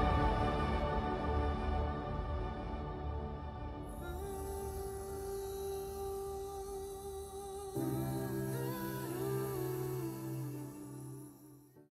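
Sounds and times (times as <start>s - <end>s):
soft music of long held notes: 0.0s - 11.9s.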